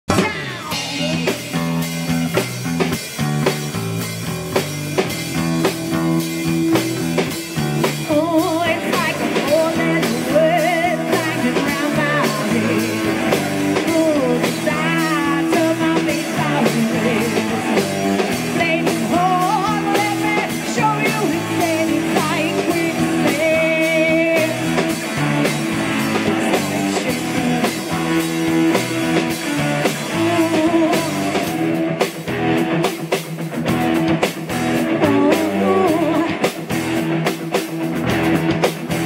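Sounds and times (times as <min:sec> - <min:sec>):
live rock band playing: 0:00.0 - 0:39.0.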